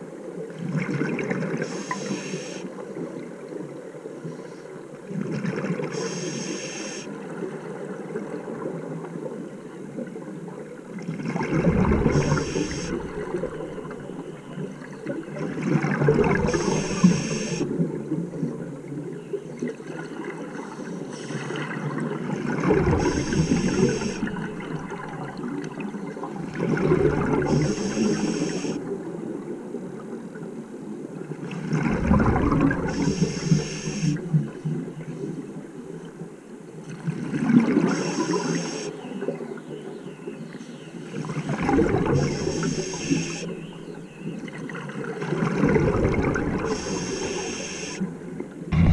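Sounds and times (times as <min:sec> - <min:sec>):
regulator inhalation hiss: 0:01.6 - 0:02.7, 0:05.9 - 0:07.1, 0:12.1 - 0:13.4, 0:16.5 - 0:17.7, 0:23.0 - 0:24.4, 0:27.5 - 0:28.8, 0:32.9 - 0:34.2, 0:37.9 - 0:38.9, 0:42.2 - 0:43.6, 0:46.7 - 0:48.1
gurgle of exhaled bubbles: 0:11.1 - 0:18.6, 0:21.4 - 0:28.4, 0:31.6 - 0:34.5, 0:41.4 - 0:42.9, 0:44.8 - 0:47.5, 0:48.6 - 0:48.9.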